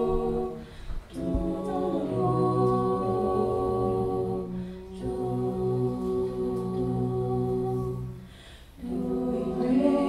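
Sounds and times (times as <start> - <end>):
a cappella group singing in harmony: 0.0 - 10.0.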